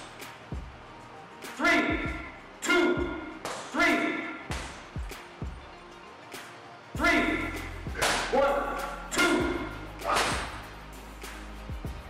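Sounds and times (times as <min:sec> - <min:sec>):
background music with low beat: 0:00.0 - 0:12.0
sharp whip-like cracks: 0:03.4 - 0:05.2, 0:07.9 - 0:11.6.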